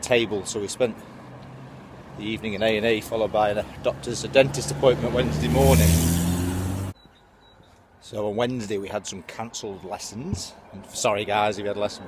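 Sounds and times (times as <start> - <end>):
motor vehicle passing close by: 3.2 - 7.0.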